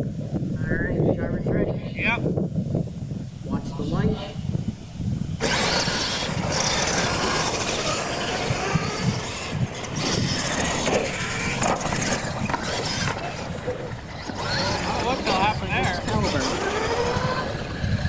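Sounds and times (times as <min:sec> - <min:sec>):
radio-controlled truck motors whining: 0:05.4 - 0:18.0.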